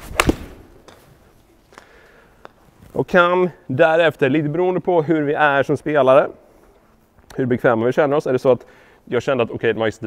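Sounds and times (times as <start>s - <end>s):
golf club swish: 0.0s - 1.5s
golf club striking ball: 0.1s - 1.0s.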